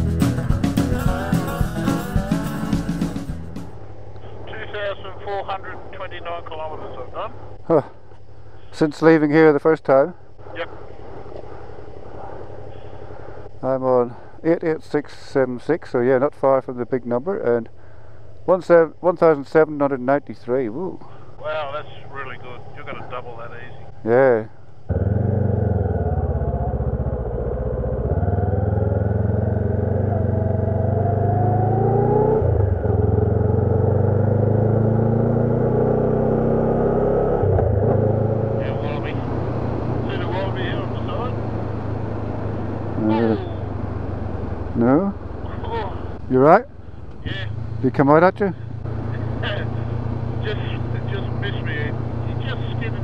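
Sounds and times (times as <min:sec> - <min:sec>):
motorcycle engine idling: 0:24.6 - 0:29.2, 0:38.8 - 0:52.9.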